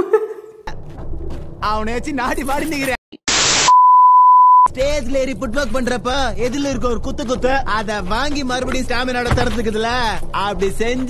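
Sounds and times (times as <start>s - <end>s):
tv static hiss: 3.3s - 3.8s
high-pitched beep: 3.6s - 4.7s.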